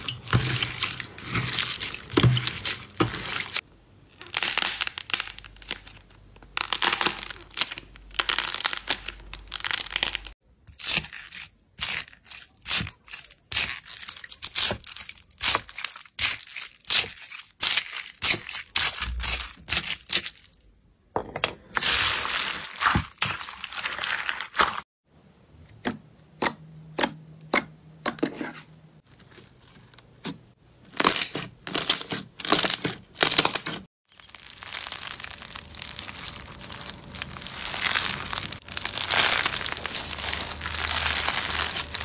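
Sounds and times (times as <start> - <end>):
hands crackling beaded mass: 0.0 - 10.4, 31.1 - 42.0
slime squeezed crackling: 0.0 - 20.4, 31.0 - 42.0
foam beads clicking and popping: 4.2 - 10.4.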